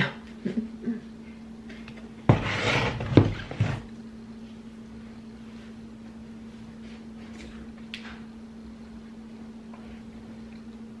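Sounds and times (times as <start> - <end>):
steady low hum: 0.0 - 11.0
cardboard box scraping and thumping: 2.3 - 3.9.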